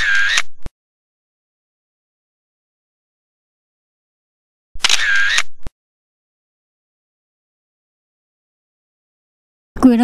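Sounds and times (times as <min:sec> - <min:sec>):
camera shutter sound effect: 0:00.0 - 0:00.7, 0:04.8 - 0:05.7.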